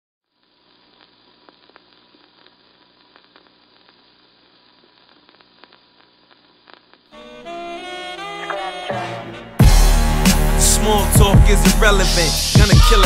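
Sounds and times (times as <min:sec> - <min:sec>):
vinyl record crackle and hiss: 0:00.2 - 0:08.9.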